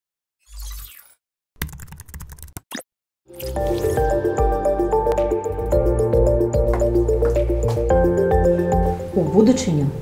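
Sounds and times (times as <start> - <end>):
computer keyboard typing: 1.6 - 2.6.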